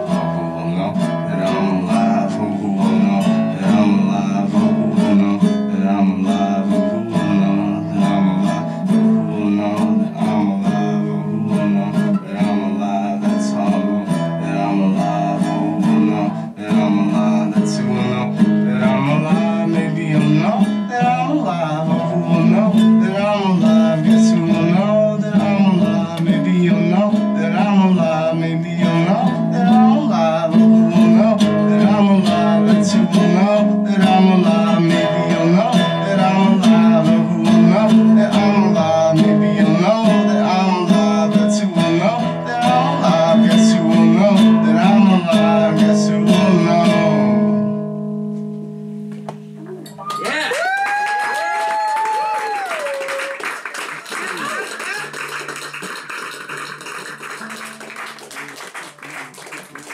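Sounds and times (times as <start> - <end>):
man singing: 0.0 - 48.0
acoustic guitar playing: 0.0 - 50.5, 55.0 - 59.4.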